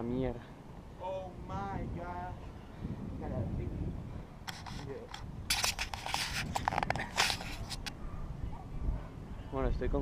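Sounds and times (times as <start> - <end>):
hands scraping on metal post: 4.5 - 7.9.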